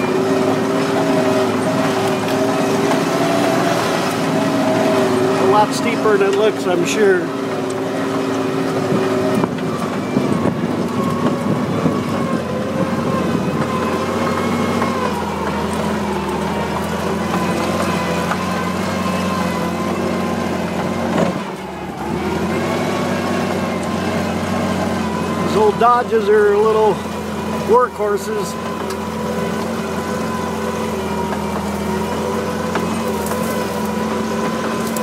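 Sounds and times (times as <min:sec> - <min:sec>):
truck engine droning off-road: 0:00.0 - 0:35.0.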